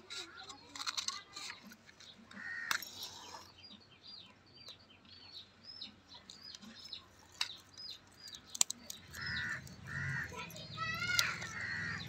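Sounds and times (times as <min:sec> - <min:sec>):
birds chirping: 0:00.0 - 0:12.0.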